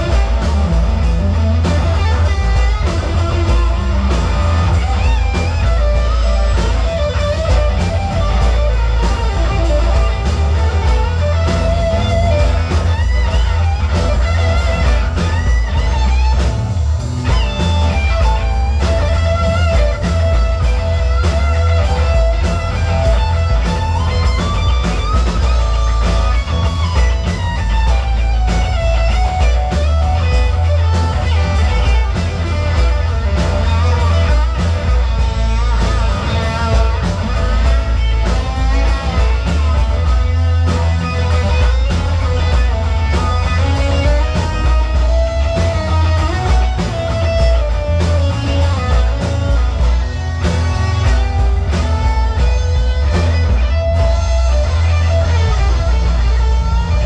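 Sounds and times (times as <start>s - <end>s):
bass guitar: 0.0s - 57.0s
drum kit: 0.0s - 57.0s
lead electric guitar: 0.0s - 57.0s
rhythm guitar: 0.0s - 57.0s.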